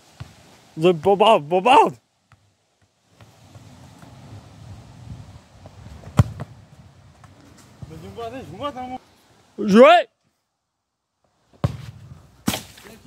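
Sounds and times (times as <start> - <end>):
faint outdoor background noise: 0.0 - 13.0
football being kicked: 6.0 - 6.6, 11.5 - 12.8.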